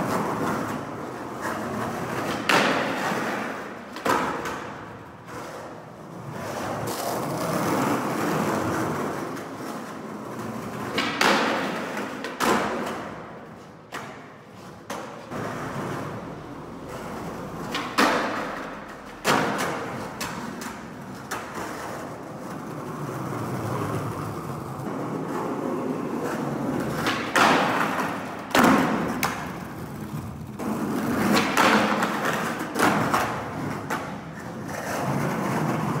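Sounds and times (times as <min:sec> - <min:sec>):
skateboard clacking on ground: 0:00.0 - 0:36.0
skateboard wheels rolling on concrete: 0:00.0 - 0:36.0.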